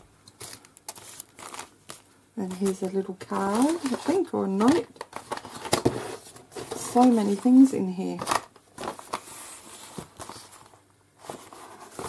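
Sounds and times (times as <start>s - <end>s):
paper and plastic rustling: 0.3s - 12.0s.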